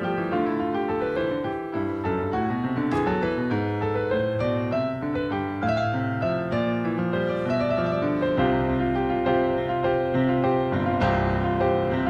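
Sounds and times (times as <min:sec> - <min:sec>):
solo piano playing: 0:00.0 - 0:12.0.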